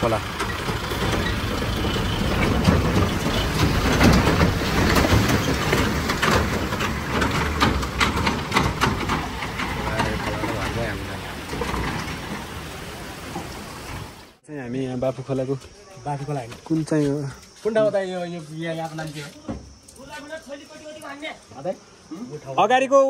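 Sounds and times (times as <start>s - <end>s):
diesel truck engine running: 0.0s - 14.4s
water splashing: 0.0s - 14.4s.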